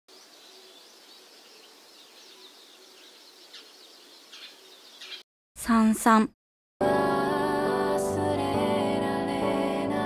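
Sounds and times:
steady background hiss: 0.1 - 5.1
birds chirping: 0.1 - 5.3.

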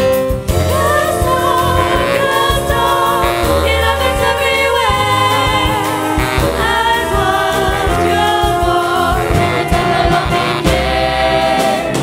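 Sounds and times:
drum kit beat: 0.0 - 12.0
live ensemble music: 0.0 - 12.0
girls singing: 0.7 - 12.0.

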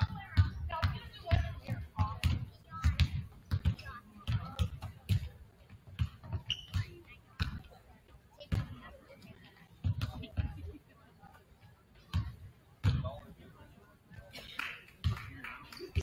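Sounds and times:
basketballs bouncing on wooden floor: 0.0 - 7.8, 8.4 - 9.0, 9.7 - 10.6, 12.1 - 13.2.

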